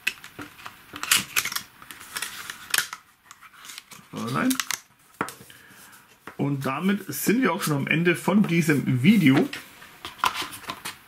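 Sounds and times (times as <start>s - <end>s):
photo cards rustling and sliding: 0.2s - 11.0s.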